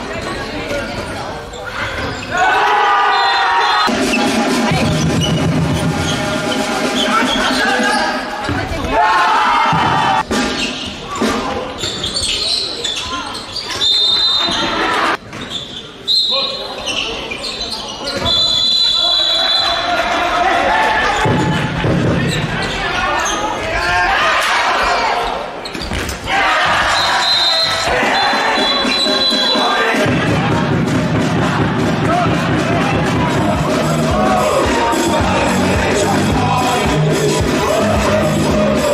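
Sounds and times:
players and spectators shouting: 1.5 - 10.2, 18.1 - 25.6, 26.2 - 38.9
handball bouncing on hall floor: 21.2 - 22.5.

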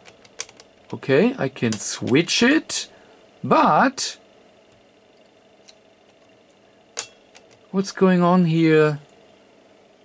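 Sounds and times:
faint hiss and low hum: 0.0 - 10.0.

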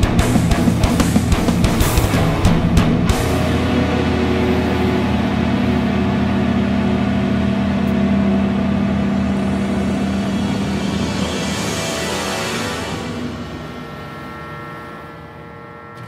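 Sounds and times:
distorted electric guitar chord: 0.0 - 16.0.

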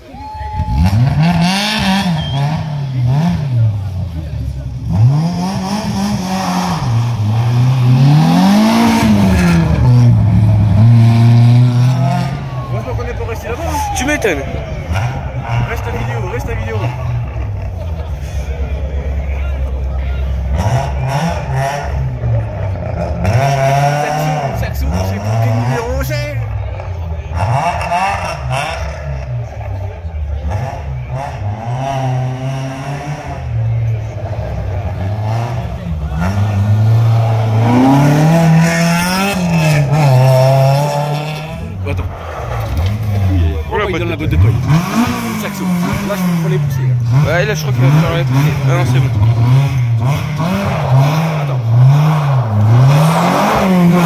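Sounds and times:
rally car engine revving: 0.0 - 54.0.

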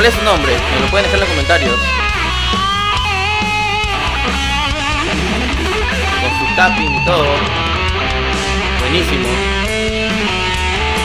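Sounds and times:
electric guitar solo: 0.0 - 11.0
heavy metal band playing: 0.0 - 11.0.

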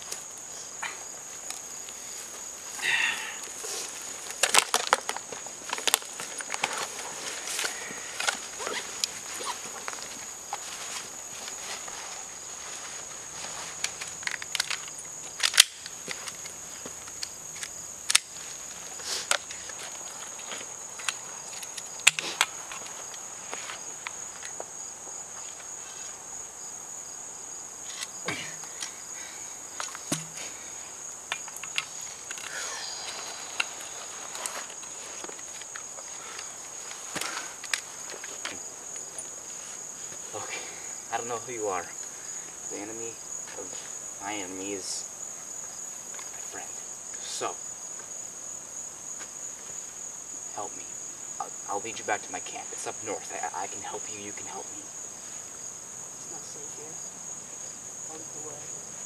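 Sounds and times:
rustling in grass and leaves: 0.0 - 26.8, 27.8 - 47.2
insects droning: 0.0 - 59.0
footsteps in grass: 3.5 - 14.2.

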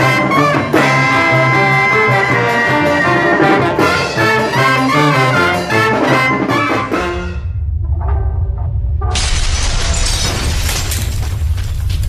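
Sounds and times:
deep rumble: 6.9 - 12.0
crash of shattering debris: 9.1 - 12.0.

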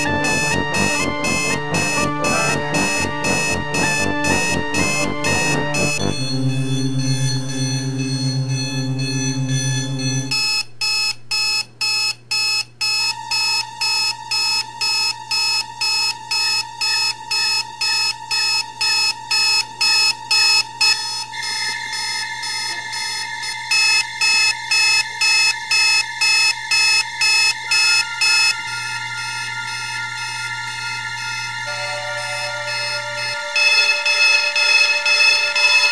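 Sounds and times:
steady electronic tones: 0.0 - 10.3, 20.7 - 35.9
digital alarm clock beeping: 0.0 - 35.9.

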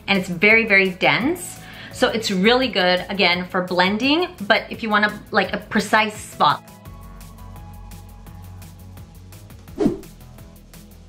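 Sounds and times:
music with steady beat: 6.3 - 11.0.

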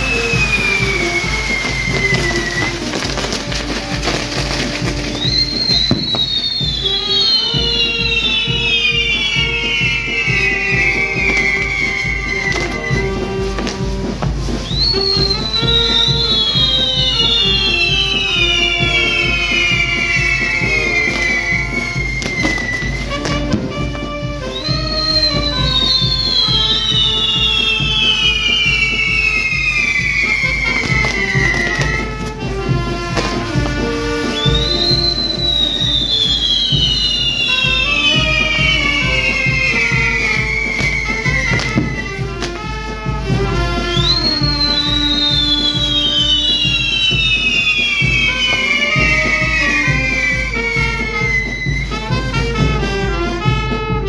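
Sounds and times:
high fireworks whistles: 0.0 - 54.0
music playing: 0.0 - 54.0.

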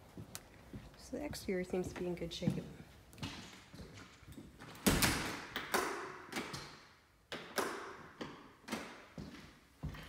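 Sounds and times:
footsteps on hard floor: 0.0 - 4.7, 9.1 - 10.0.

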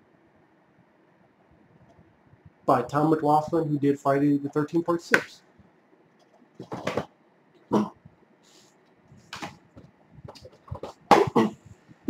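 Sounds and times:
plastic cases clacking and scraping: 6.5 - 7.2, 9.3 - 11.4.

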